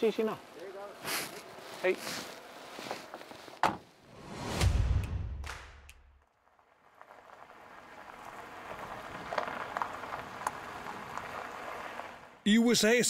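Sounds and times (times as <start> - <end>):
tyres rolling over gravel: 0.2 - 3.6, 6.4 - 12.4
whooshing transition effect: 4.1 - 6.1
low rumble: 4.2 - 6.2.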